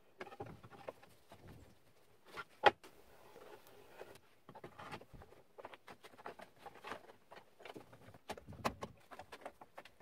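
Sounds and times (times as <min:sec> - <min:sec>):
gloved hands tapping and scraping wood: 0:00.0 - 0:10.0.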